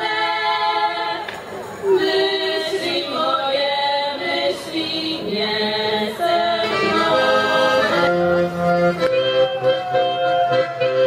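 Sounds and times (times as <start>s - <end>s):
folk music with accordion: 0.0s - 11.0s.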